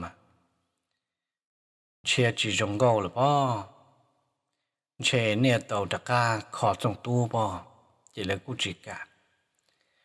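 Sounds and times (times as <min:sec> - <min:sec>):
man narrating: 0:00.0 - 0:00.2, 0:02.0 - 0:03.8, 0:05.0 - 0:09.2.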